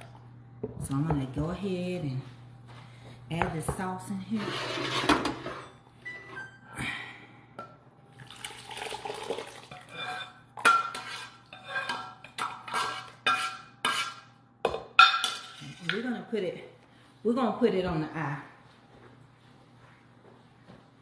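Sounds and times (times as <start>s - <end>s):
metal utensil scraping pan: 4.4s - 5.8s, 9.7s - 14.3s.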